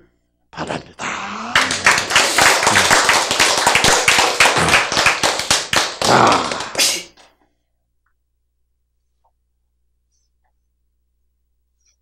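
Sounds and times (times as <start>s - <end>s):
crowd applauding: 1.2s - 7.1s.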